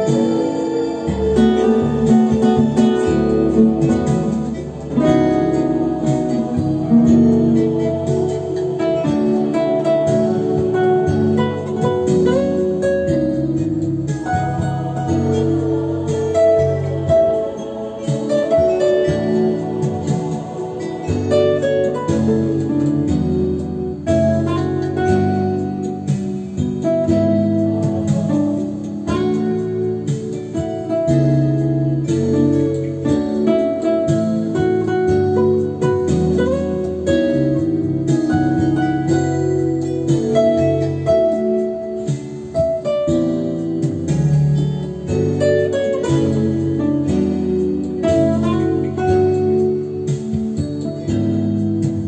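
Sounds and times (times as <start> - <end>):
classical guitar fingerstyle: 0.0 - 52.0.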